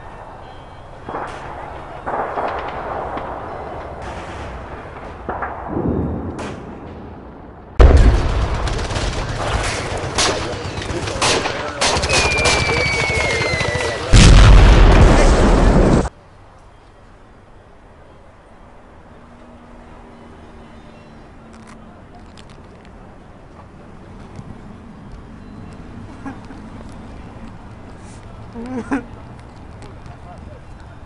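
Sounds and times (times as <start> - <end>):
loud explosion: 2.1 - 9.9, 14.1 - 16.1
rifle shots: 7.8 - 13.2
falling whistle: 12.0 - 14.1.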